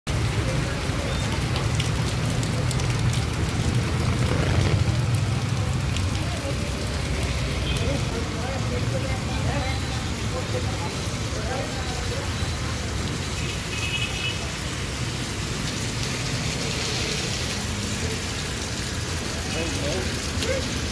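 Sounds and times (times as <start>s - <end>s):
heavy rain on pavement: 0.1s - 20.9s.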